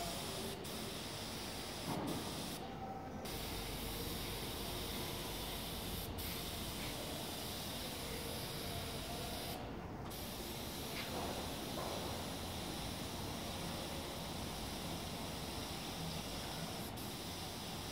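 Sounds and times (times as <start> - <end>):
paint spray gun hissing: 0.0 - 2.6, 5.5 - 17.9.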